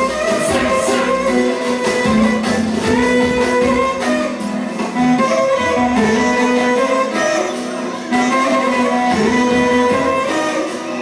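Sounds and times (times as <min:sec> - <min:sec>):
guitar accompaniment: 0:00.0 - 0:11.0
violin melody: 0:00.0 - 0:11.0.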